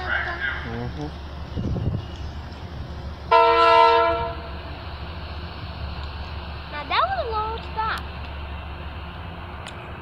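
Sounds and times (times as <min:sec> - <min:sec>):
train low rumble: 0:00.0 - 0:10.0
train horn blast: 0:03.3 - 0:04.6.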